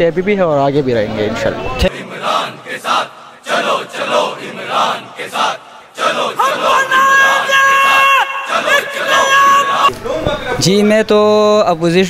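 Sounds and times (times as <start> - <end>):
crowd chanting and shouting: 1.1 - 10.7
long high held shout: 6.0 - 9.9.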